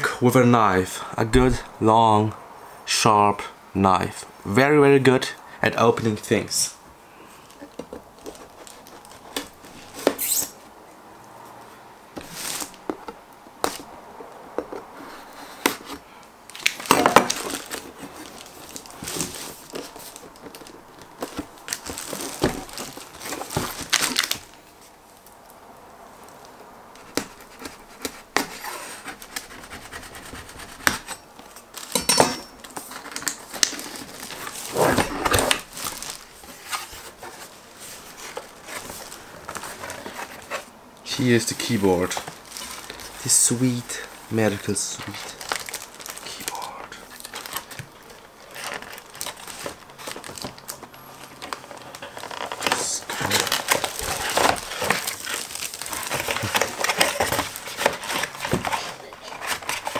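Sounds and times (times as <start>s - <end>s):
plastic wrap cut and crinkled: 16.5s - 24.6s, 32.6s - 40.7s, 41.4s - 44.0s, 44.6s - 59.9s.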